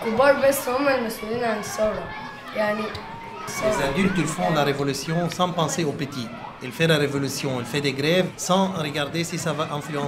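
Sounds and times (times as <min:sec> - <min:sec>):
boys talking: 0:00.0 - 0:10.0.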